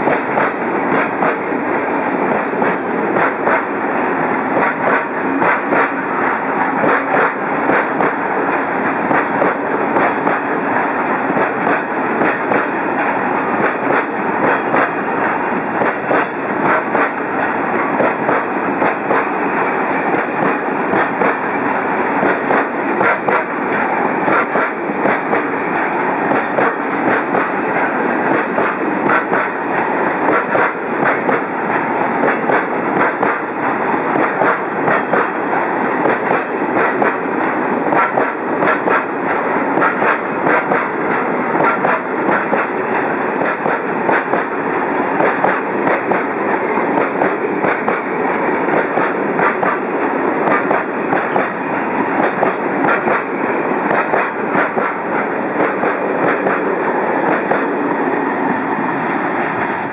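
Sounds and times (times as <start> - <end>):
freight train rumbling past: 0.0 - 59.9
wheels clattering over rail joints: 0.0 - 59.9.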